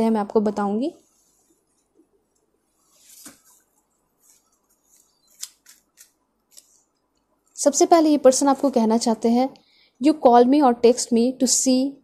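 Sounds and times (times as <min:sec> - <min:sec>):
cards snapping and sliding: 0:05.3 - 0:06.8.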